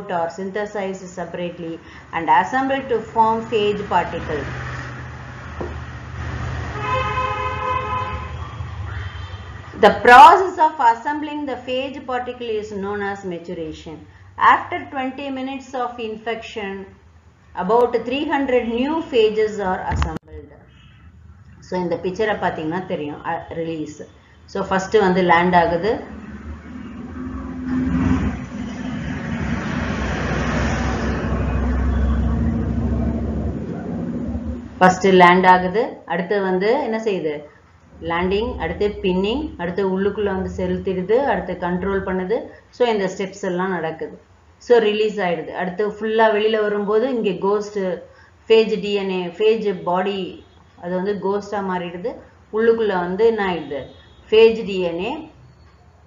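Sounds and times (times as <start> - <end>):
horn long steady note: 6.1 - 9.8, 25.6 - 34.8, 37.9 - 41.5
low steady hum: 7.8 - 28.9, 29.5 - 48.0
motor vehicle engine rumbling: 19.9 - 22.0, 25.3 - 34.9, 37.9 - 42.1.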